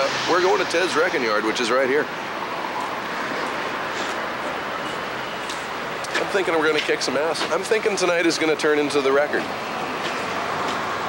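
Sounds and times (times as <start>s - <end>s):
passing traffic hiss: 0.0s - 11.0s.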